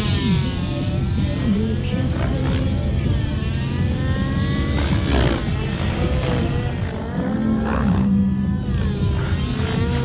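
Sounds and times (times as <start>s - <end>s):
rc helicopter engine and rotors: 0.0s - 10.0s.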